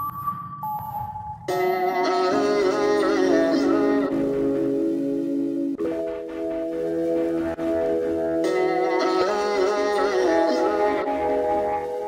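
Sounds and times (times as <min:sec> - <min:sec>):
music with held chords and melody: 0:00.0 - 0:12.0.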